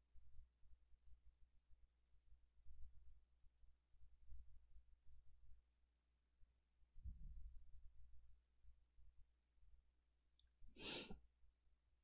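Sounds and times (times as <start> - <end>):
person exhaling: 10.8 - 11.2.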